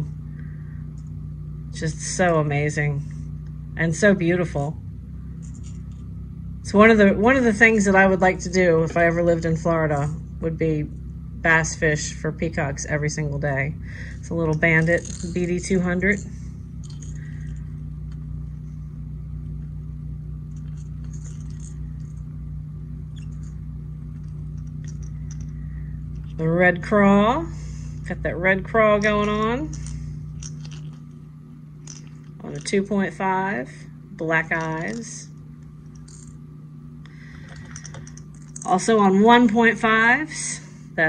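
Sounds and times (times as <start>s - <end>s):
low room hum: 0.0s - 41.0s.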